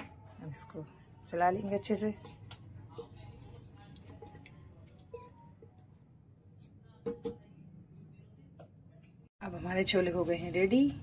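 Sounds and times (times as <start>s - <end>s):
spoon stirring thick food: 1.7s - 5.8s.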